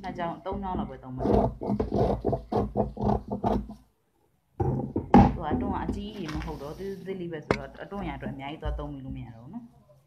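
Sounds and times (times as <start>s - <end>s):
person talking: 0.0s - 1.5s, 5.3s - 9.7s.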